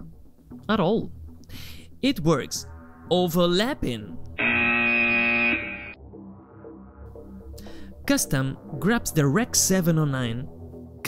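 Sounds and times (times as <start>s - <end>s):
loud steady buzzer: 4.4s - 6.0s.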